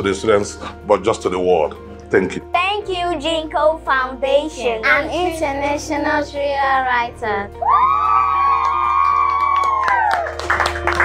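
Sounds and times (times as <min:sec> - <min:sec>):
background music: 0:00.0 - 0:11.0
children cheering: 0:07.6 - 0:11.0
hand claps: 0:08.1 - 0:11.0.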